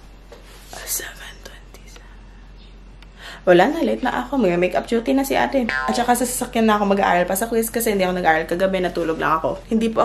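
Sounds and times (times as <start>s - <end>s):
low steady hum: 0.0s - 10.0s
faint whispering: 0.7s - 2.2s.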